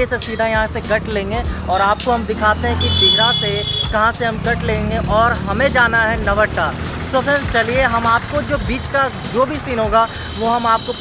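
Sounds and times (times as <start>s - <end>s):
motorcycles passing: 0.0s - 11.0s
street traffic: 0.0s - 11.0s.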